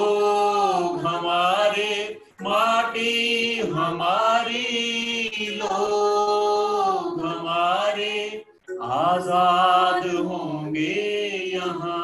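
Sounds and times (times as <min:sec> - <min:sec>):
man and woman singing: 0:00.0 - 0:12.0.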